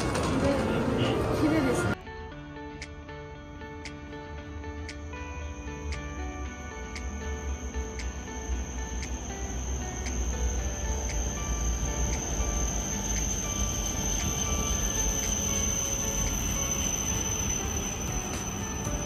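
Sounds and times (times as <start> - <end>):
train rumbling: 0.0 - 2.0, 7.3 - 19.0
light ticks: 6.9 - 7.2.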